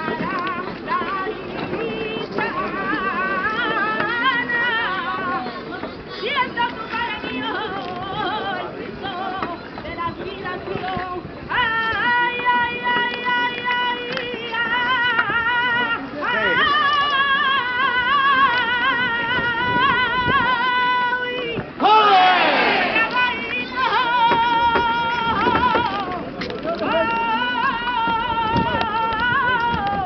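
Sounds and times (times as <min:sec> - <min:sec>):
woman singing unaccompanied: 0:00.0 - 0:30.0.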